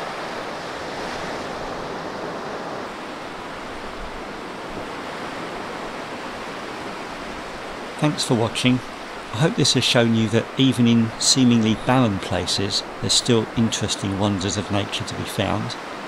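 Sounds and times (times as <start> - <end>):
waves washing over sandy beach: 0.0 - 16.0.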